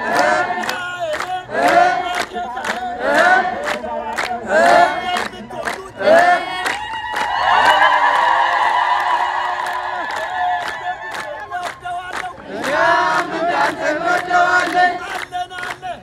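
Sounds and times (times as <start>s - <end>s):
group chanting and singing: 0.0s - 7.5s, 8.2s - 16.0s.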